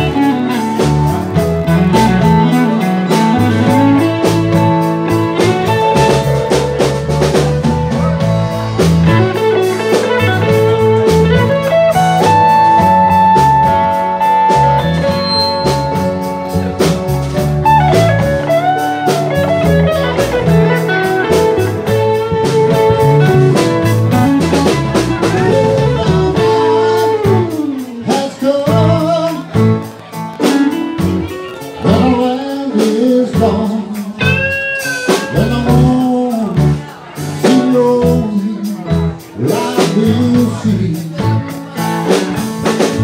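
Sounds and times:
guitar lead with bent notes: 0:00.0 - 0:43.0
live band playing instrumental: 0:00.0 - 0:43.0.

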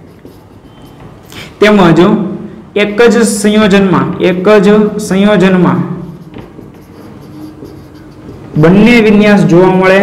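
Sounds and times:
marker scratching on whiteboard: 0:00.0 - 0:01.8, 0:05.0 - 0:09.8.

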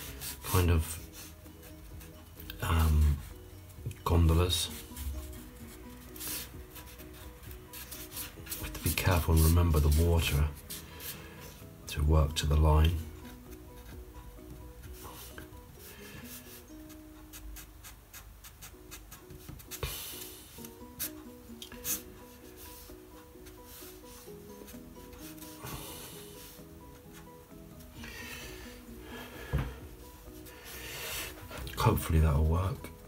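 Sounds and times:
soft background music: 0:00.0 - 0:33.0
marker scratching on paper: 0:04.8 - 0:10.0, 0:16.3 - 0:19.9, 0:21.8 - 0:25.6.

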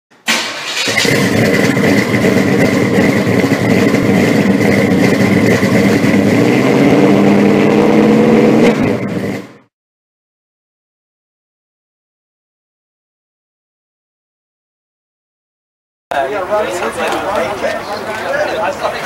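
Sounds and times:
car engine revving: 0:00.3 - 0:09.7.

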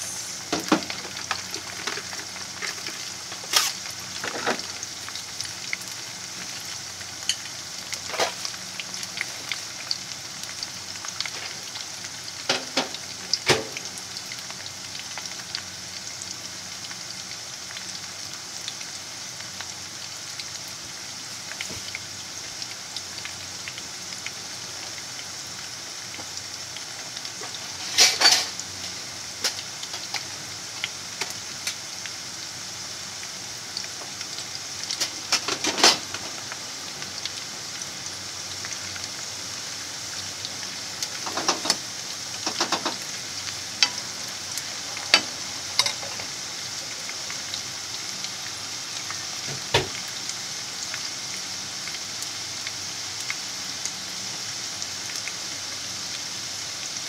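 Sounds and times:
potatoes sizzling in oil: 0:00.0 - 0:57.0
oil crackling: 0:00.1 - 0:04.7.

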